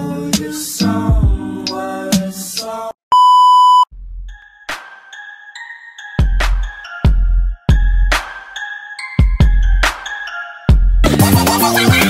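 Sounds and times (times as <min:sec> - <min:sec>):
high test-tone beep: 0:03.1 - 0:03.9.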